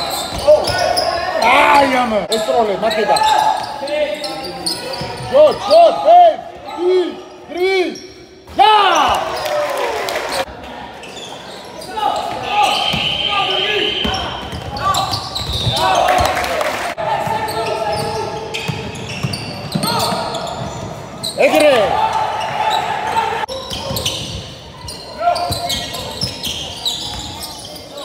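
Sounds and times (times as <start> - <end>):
sneaker squeaks: 0.0 - 6.0, 6.6 - 9.6, 10.3 - 16.4, 17.2 - 28.0
players calling out: 0.0 - 28.0
basketball bouncing on court: 14.0 - 16.4, 17.2 - 21.0.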